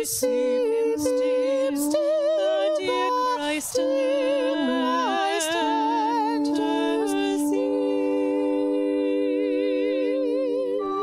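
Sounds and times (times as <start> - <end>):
women singing in close harmony: 0.0 - 11.0.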